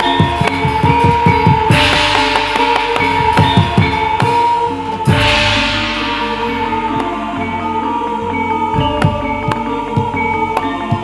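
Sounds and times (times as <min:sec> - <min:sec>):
rapid drum strokes: 0:00.0 - 0:10.1
ringing metal gong-chime tones: 0:00.0 - 0:11.0.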